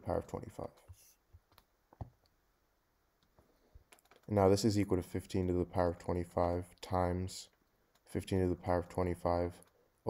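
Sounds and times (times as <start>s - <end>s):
faint clicks: 3.2s - 4.4s.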